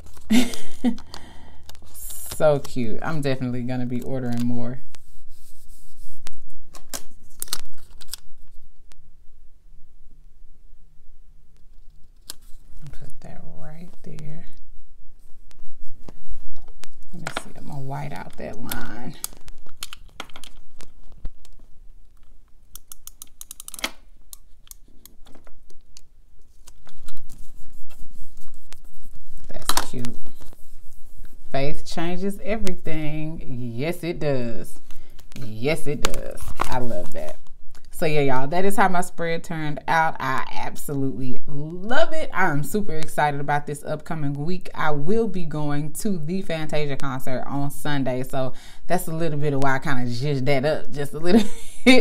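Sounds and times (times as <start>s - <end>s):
sticker peeling and paper rustling: 3.9s - 8.6s, 15.5s - 31.4s
tape rubbing on paper: 4.0s - 8.4s, 26.4s - 31.7s
correction tape clicking and scratching: 15.5s - 30.6s, 35.2s - 38.0s.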